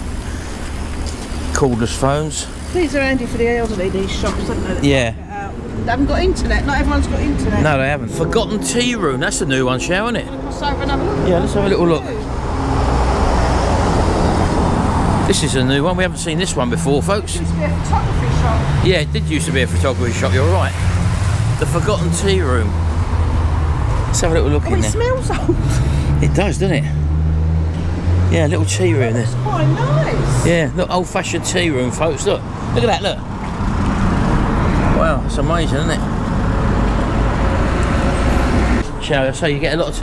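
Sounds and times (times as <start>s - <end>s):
low rumbling street noise: 0.0s - 40.0s
vehicle passing: 0.0s - 40.0s.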